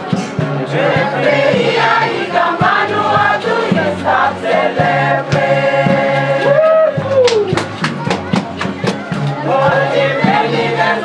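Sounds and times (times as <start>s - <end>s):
bamboo band playing: 0.0s - 11.0s
women singing in chorus: 0.7s - 6.6s, 9.4s - 11.0s.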